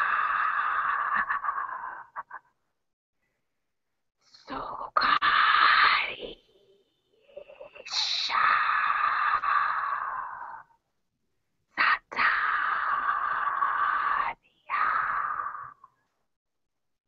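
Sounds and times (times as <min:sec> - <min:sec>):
person making breathy vocal sounds: 0:00.0 - 0:02.7, 0:04.3 - 0:10.8, 0:11.8 - 0:16.0.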